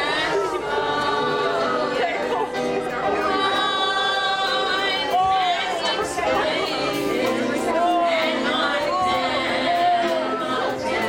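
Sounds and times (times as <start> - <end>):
congregation singing gospel song: 0.0 - 11.0
people talking: 0.0 - 11.0.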